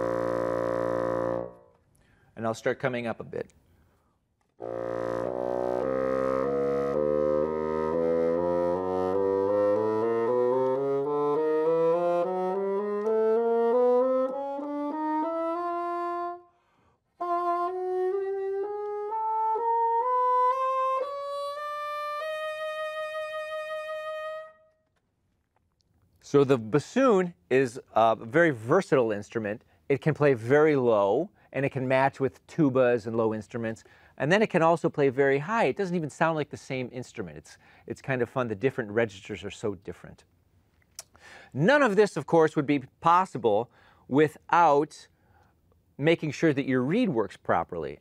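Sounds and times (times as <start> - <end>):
bassoon playing a scale: 0.0 - 1.7, 4.6 - 16.5, 17.2 - 24.6
player breathing: 2.0 - 2.4, 16.5 - 17.2, 33.8 - 34.2, 37.6 - 37.9, 41.1 - 41.6, 43.7 - 44.1.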